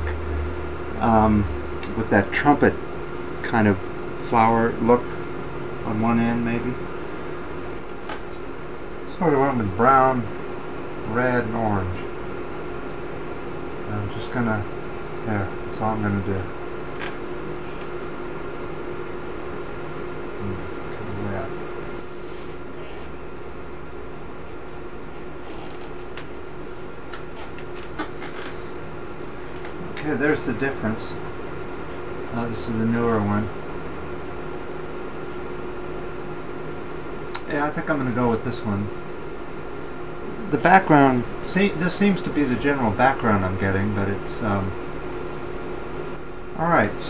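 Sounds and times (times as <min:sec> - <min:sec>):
fan-like room hum: 0:00.0 - 0:47.0.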